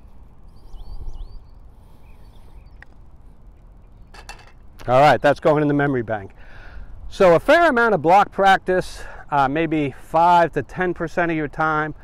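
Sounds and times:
faint outdoor background: 0.0s - 12.0s
golf ball rattling into cup: 4.1s - 4.7s.

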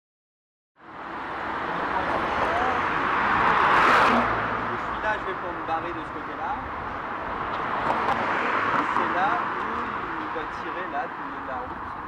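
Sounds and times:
car passing by: 0.9s - 5.2s, 6.8s - 10.4s.

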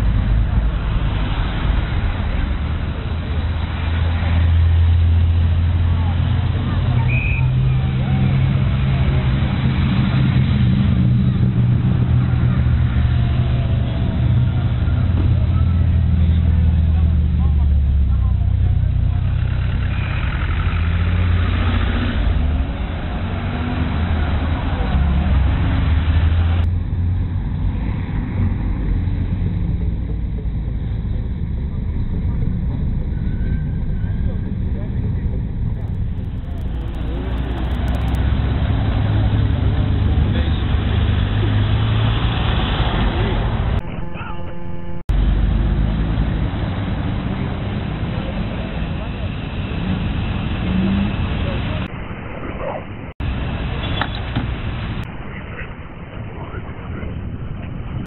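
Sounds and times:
rally car engines rumbling: 0.0s - 58.0s.

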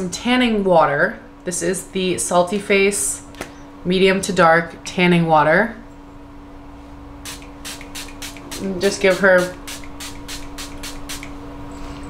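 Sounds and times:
steady low hum: 0.0s - 12.0s
spray bottle hissing: 7.3s - 11.4s.

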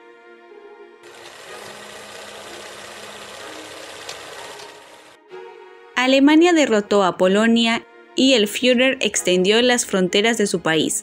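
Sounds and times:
film projector whirring rattle: 1.0s - 5.2s.

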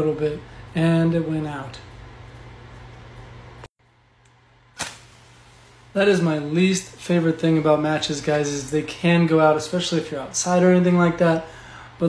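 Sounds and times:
faint steady hum: 0.0s - 12.0s
match striking and flaring: 4.8s - 5.8s.

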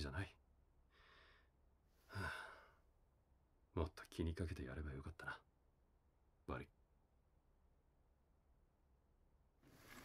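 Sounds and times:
man sighing: 2.0s - 2.8s.

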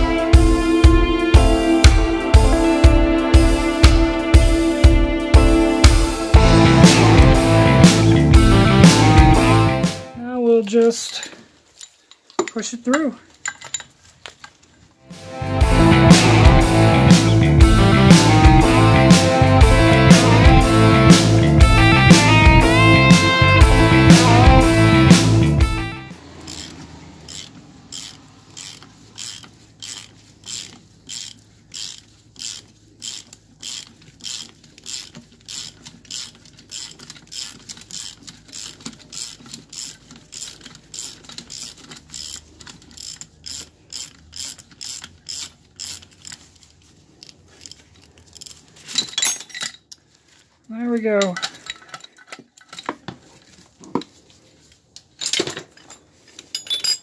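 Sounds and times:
ratchet wrench clicking: 26.4s - 46.7s, 47.6s - 48.6s
metal clanks: 55.2s - 57.0s.

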